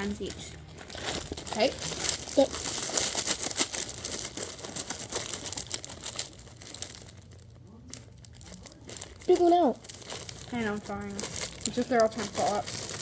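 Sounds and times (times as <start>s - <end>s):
plastic bag crinkling: 0.0s - 13.0s.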